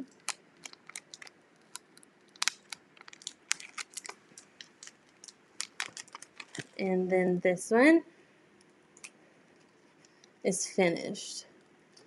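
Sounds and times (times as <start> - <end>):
tape peeling with crackles: 0.1 - 6.8.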